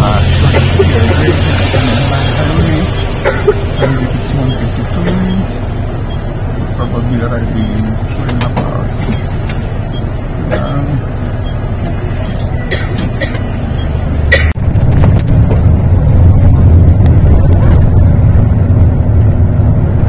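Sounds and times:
indistinct voices: 0.0 - 13.8
bus engine rumbling: 0.0 - 20.0.

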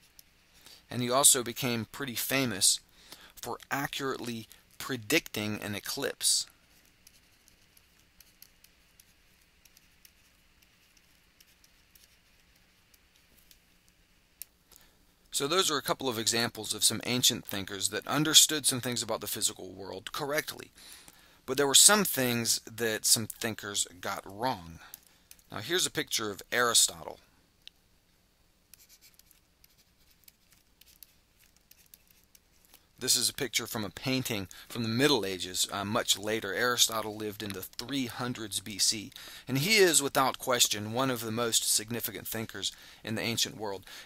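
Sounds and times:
low hiss: 0.0 - 44.0
pen scratching on paper: 28.7 - 32.5.

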